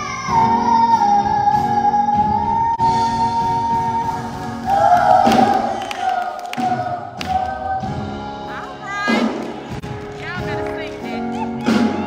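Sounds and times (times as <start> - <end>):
children singing in harmony: 0.0 - 8.3.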